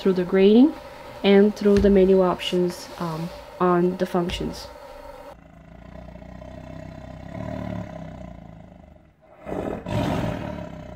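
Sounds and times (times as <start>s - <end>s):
big cat growling: 2.5s - 10.9s
big cat roaring: 5.2s - 10.9s.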